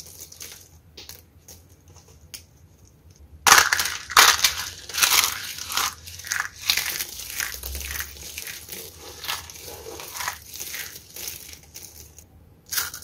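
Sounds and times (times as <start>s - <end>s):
hands crunching dry soap shards: 3.5s - 13.0s.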